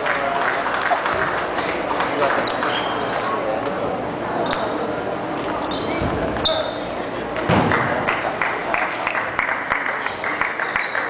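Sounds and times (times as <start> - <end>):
hubbub of voices: 0.0 - 11.0.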